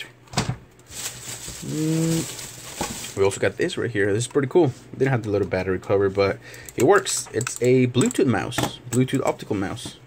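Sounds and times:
handling rustle: 0.8s - 3.4s
man humming: 1.6s - 2.4s.

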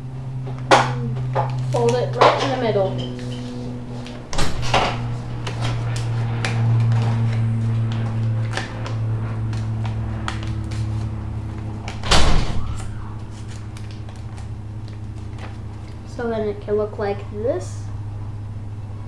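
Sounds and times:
steady low hum: 0.0s - 19.0s
paper rustling and crinkling: 5.0s - 12.0s, 12.6s - 16.1s.

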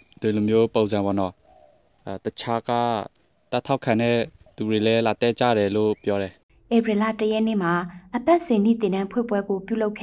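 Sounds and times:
man reading news: 0.0s - 6.4s.

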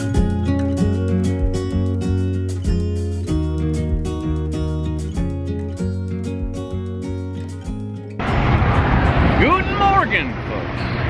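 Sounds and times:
road traffic rumble: 5.7s - 11.0s
bus driving past: 8.1s - 11.0s.

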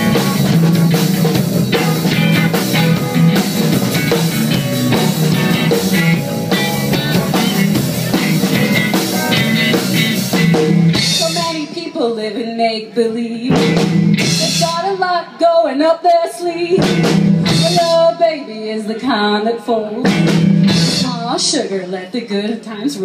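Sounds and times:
live rock band playing: 0.0s - 12.7s, 13.5s - 22.1s.

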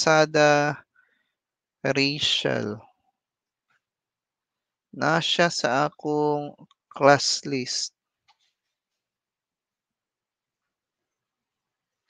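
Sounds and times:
man speaking into headset microphone: 0.0s - 0.8s, 1.9s - 2.8s, 5.0s - 7.9s.

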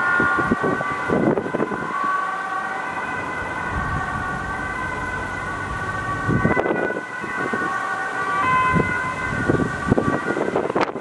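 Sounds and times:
ambulance siren: 0.0s - 11.0s
road traffic: 0.0s - 11.0s.

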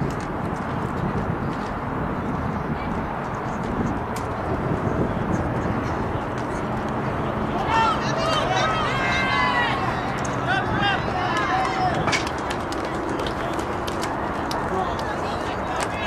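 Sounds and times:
voices calling out loudly: 5.6s - 16.0s.

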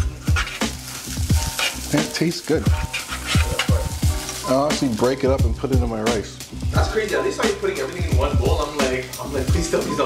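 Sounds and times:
spoon stirring: 0.0s - 4.6s
rice sizzling in a pot: 0.0s - 10.0s
music with deep bass beat: 5.3s - 10.0s.

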